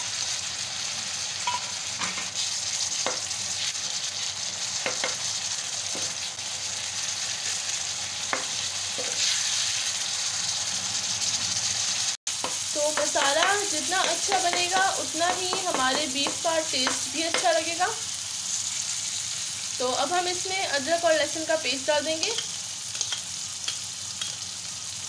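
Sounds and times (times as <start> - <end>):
vegetables sizzling in oil: 0.0 - 25.0.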